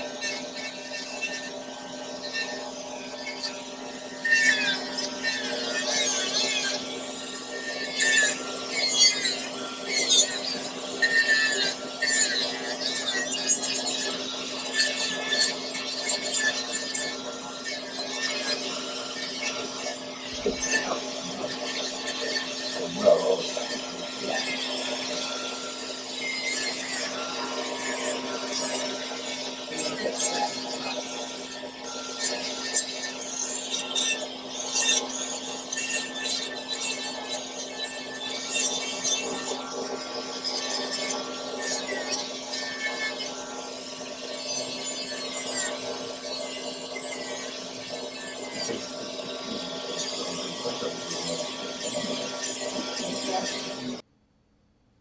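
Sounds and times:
nail drill whining: 0.0 - 54.0.

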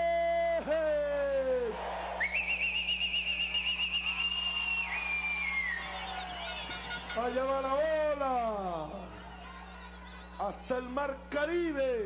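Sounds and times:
whistle warbling trill: 2.2 - 7.6.

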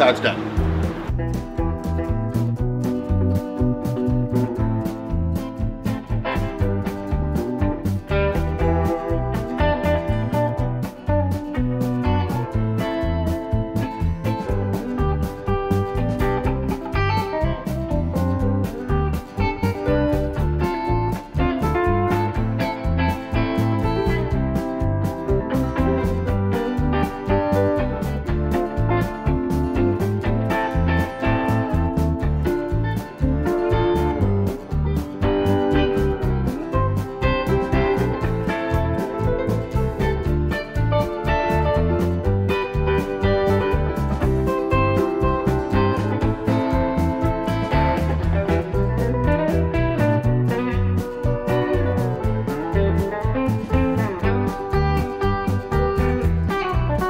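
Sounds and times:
guitar-led instrumental music: 0.0 - 57.0.

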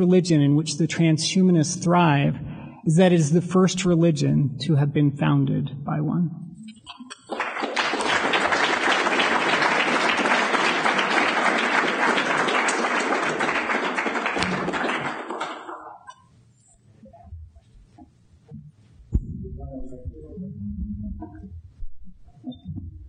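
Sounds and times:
audience applauding: 7.2 - 16.1.

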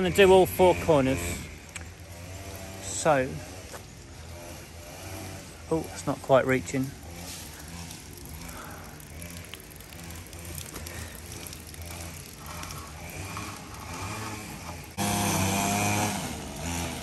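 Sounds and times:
small engine running: 0.0 - 17.0.

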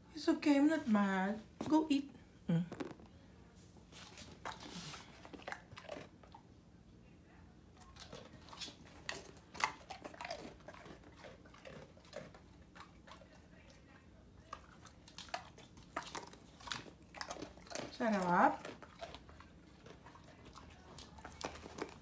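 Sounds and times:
dog crunching crackers: 4.0 - 6.5, 7.8 - 13.8, 14.4 - 22.0.

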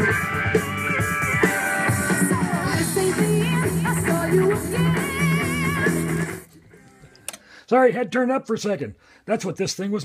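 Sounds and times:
loud music through speakers: 0.0 - 6.5.

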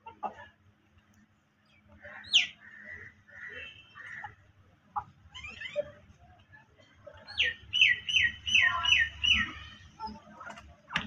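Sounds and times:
bird chirping: 7.3 - 10.2.

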